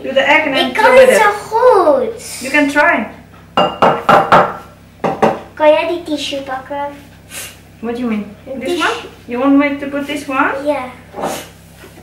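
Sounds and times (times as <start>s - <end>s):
egg tapping on ceramic bowl: 3.6s - 5.4s.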